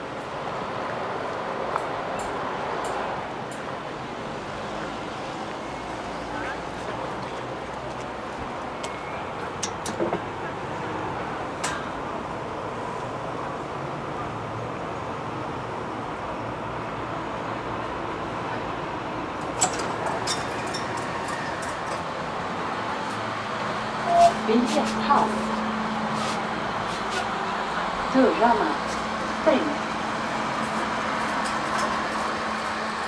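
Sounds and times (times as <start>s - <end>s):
road traffic noise: 0.0s - 33.0s
elevator low hum: 15.1s - 33.0s
recorded voice announcement: 24.0s - 25.5s, 27.5s - 28.8s.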